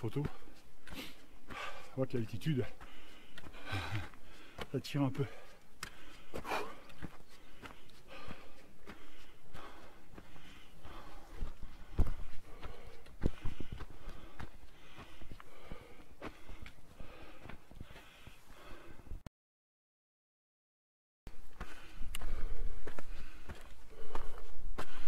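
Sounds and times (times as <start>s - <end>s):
footsteps crunching on gravel: 0.0s - 18.7s, 21.5s - 25.0s
person breathing hard: 0.3s - 2.0s, 2.7s - 19.2s, 21.4s - 25.0s.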